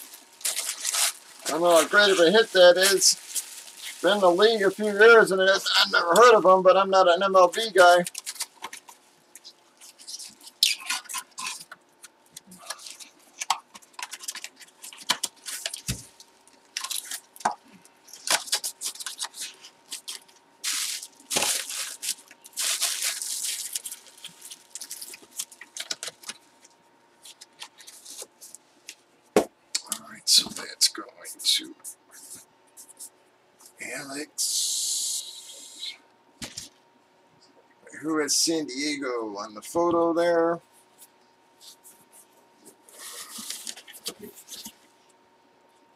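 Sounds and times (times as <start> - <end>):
packaging rustling and crinkling: 0.0 - 5.6, 7.4 - 11.7, 12.4 - 28.6, 42.6 - 44.8
faint steady hum: 0.0 - 45.9.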